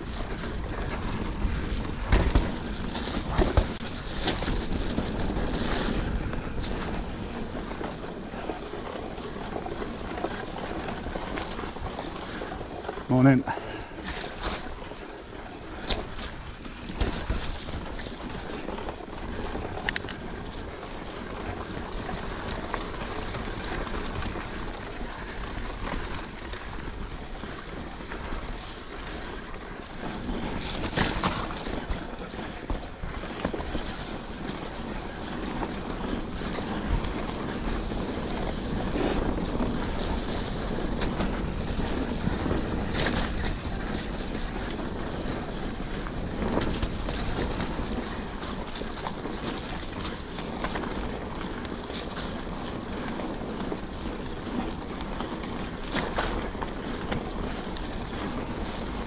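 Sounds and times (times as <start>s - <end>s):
bike clicks and knocks: 0.0s - 12.3s, 15.8s - 20.6s
bike tyres on muddy trail: 0.0s - 59.0s
wind on microphone: 15.8s - 59.0s.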